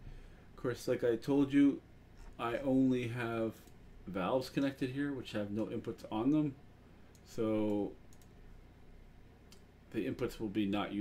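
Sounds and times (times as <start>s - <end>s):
low steady hum: 0.0s - 11.0s
computer mouse clicks: 7.1s - 8.4s, 9.5s - 10.3s.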